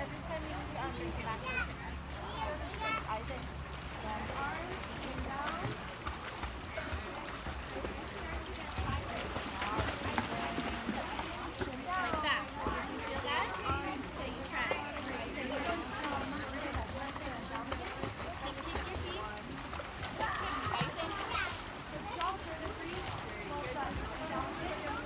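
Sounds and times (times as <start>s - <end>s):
pool water splashing: 0.0s - 25.0s.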